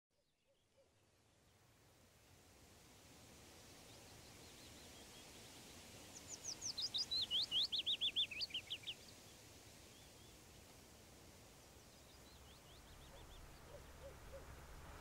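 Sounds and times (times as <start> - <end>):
faint outdoor background noise: 0.1 - 15.0.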